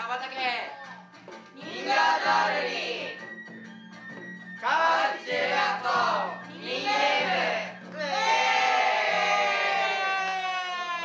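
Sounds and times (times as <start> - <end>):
students shouting a cheer: 6.8 - 11.0.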